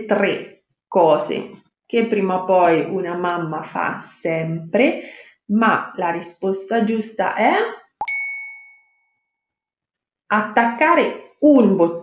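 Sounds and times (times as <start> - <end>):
bright ding: 8.0 - 9.3.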